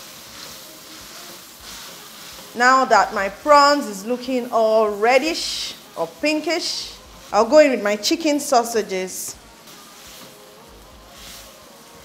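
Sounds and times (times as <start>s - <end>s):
food sizzling in a wok: 0.0s - 12.0s.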